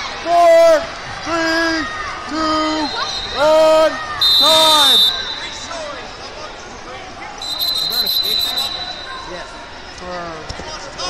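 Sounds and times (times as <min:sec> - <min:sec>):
sports hall crowd noise: 0:00.0 - 0:11.0
high steady whistle: 0:04.2 - 0:05.7, 0:07.4 - 0:09.4.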